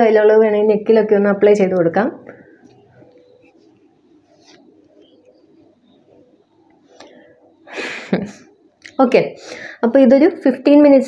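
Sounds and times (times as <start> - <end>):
woman's voice: 0.0 - 2.4, 8.2 - 11.0.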